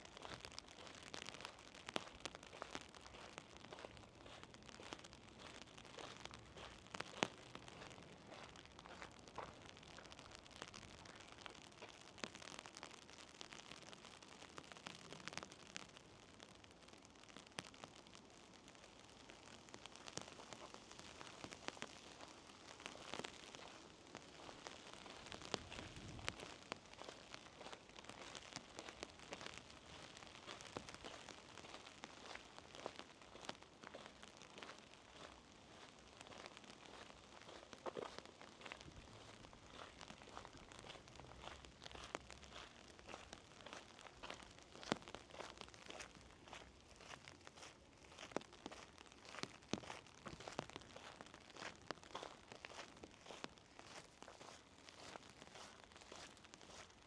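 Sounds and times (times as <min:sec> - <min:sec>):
light rain patter: 0:00.0 - 0:57.0.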